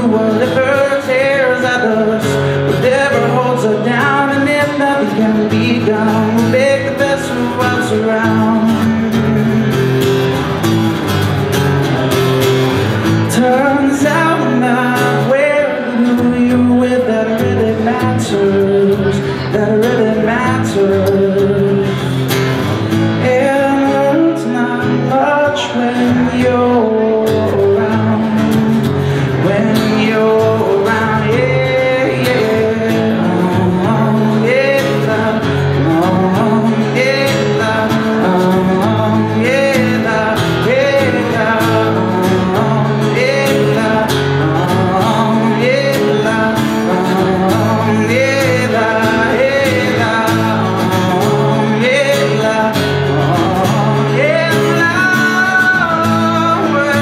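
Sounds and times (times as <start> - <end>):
man singing wordless vocals: 0.0 - 10.1, 13.0 - 57.0
acoustic guitar strummed: 0.0 - 57.0.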